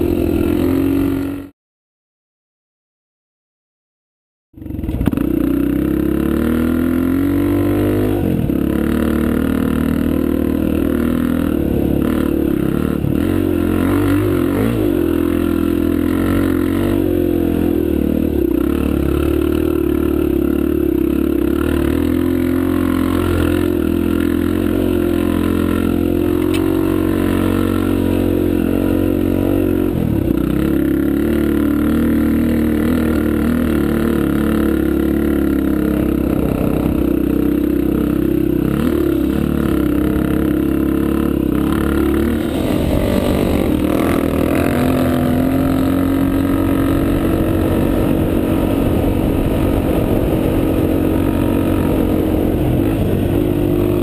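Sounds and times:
dirt bike engine revving: 0:00.0 - 0:01.5, 0:04.6 - 0:54.0.

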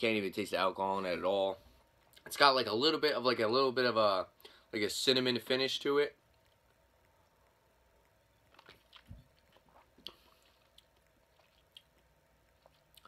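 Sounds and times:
person sipping and swallowing: 0:08.4 - 0:13.0.

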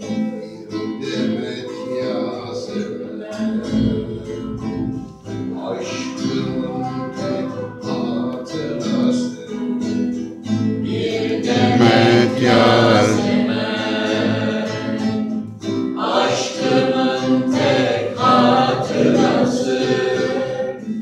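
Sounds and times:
acoustic guitar: 0:00.0 - 0:21.0
man singing folk song: 0:11.6 - 0:13.5.

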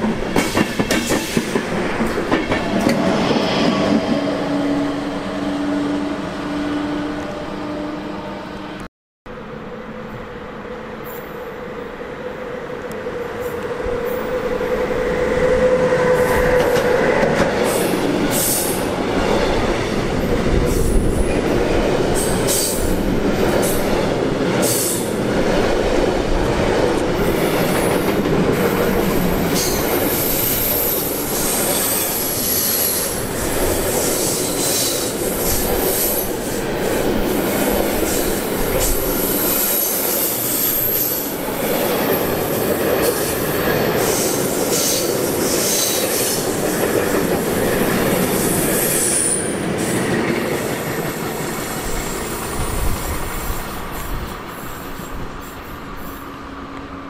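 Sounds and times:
train wheels rumbling on rails: 0:00.0 - 0:07.5, 0:10.0 - 0:57.0.

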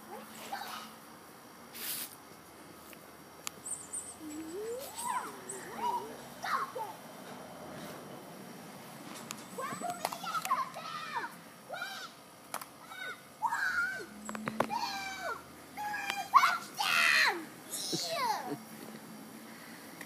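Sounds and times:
young child squealing and laughing: 0:04.2 - 0:06.9, 0:12.8 - 0:14.1, 0:14.7 - 0:18.6.

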